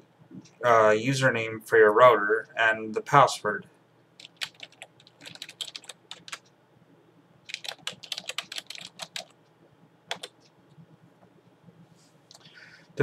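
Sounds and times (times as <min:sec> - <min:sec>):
typing on computer keyboard: 0:04.2 - 0:06.5, 0:07.5 - 0:09.4, 0:10.1 - 0:10.4.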